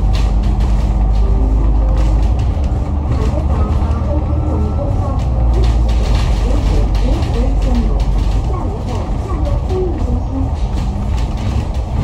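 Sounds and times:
bus engine and road rumble: 0:00.0 - 0:12.0
faint indistinct voices: 0:01.2 - 0:12.0.

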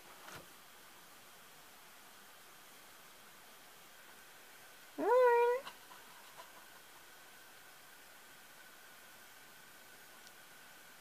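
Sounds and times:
faint ticks: 0:10.2 - 0:10.4.

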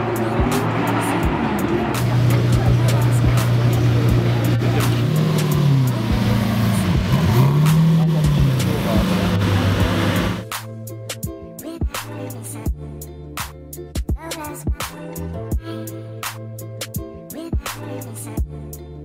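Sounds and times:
crowd chatter: 0:00.0 - 0:10.4
sports car engine revving: 0:00.0 - 0:10.5.

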